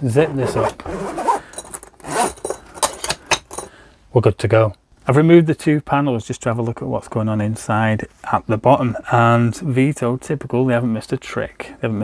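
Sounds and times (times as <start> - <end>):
bag rustling: 0.2 - 3.1
metal zipper pulls clinking: 0.2 - 3.8.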